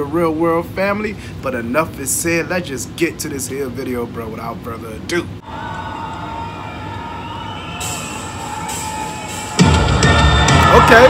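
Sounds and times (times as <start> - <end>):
crowd cheering and whooping: 5.4 - 11.0
long held tones: 5.4 - 11.0.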